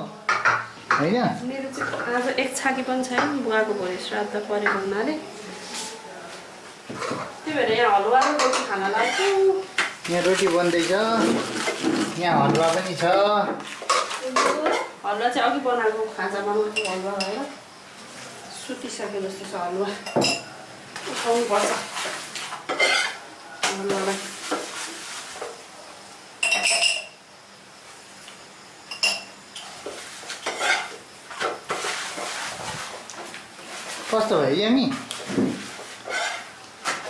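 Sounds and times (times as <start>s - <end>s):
spoon scraping metal pan: 7.0s - 15.0s, 21.5s - 24.8s, 29.0s - 33.0s, 35.7s - 37.0s
metal spatula clinking on pan: 26.4s - 27.2s.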